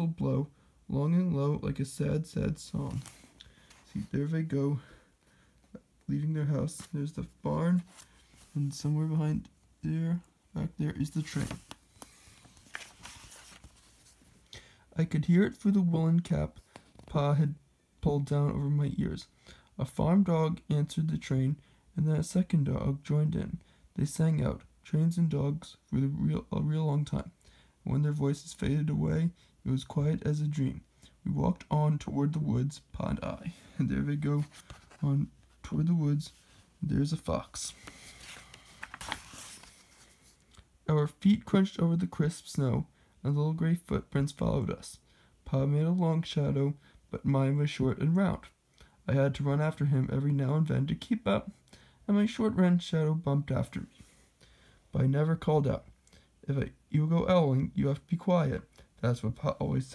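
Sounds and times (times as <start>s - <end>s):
book page rustling: 2.7s - 4.2s, 6.4s - 9.0s, 10.7s - 14.4s, 34.0s - 35.6s, 36.2s - 40.6s
small paper crackles: 11.0s - 14.3s, 37.7s - 40.4s.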